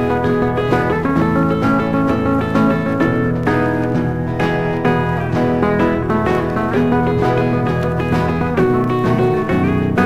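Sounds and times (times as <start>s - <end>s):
country music record with guitar: 0.0s - 10.0s.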